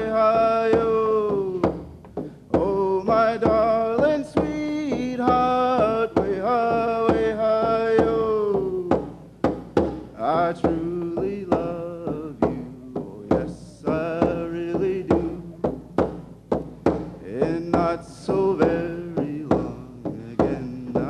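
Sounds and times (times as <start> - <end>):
man singing a chant-like song: 0.0 - 9.2, 10.1 - 15.8, 17.1 - 21.0
hand drum struck with beater: 0.0 - 21.0.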